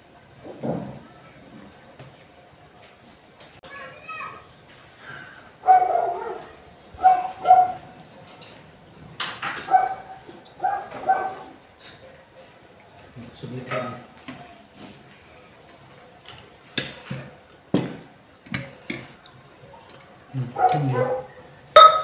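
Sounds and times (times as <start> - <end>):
dog yapping: 5.6 - 7.8, 9.6 - 11.6, 20.6 - 21.4.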